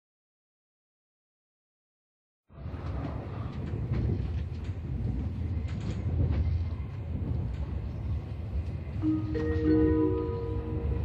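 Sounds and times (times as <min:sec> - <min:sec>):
train wheels rumbling on rails: 0:02.5 - 0:11.0.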